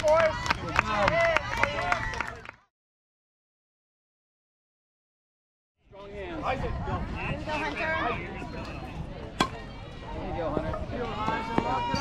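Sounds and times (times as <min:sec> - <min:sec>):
voices shouting and cheering: 0:00.0 - 0:02.7, 0:05.9 - 0:12.0.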